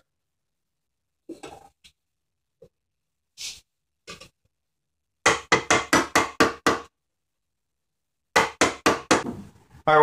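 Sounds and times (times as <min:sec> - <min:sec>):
mallet tapping wood chisel: 0:05.2 - 0:06.9, 0:08.3 - 0:09.2.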